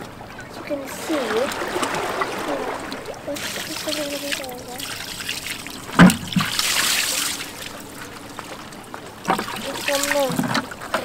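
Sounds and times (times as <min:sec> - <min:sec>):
water splashing onto rocks: 0:00.6 - 0:11.0.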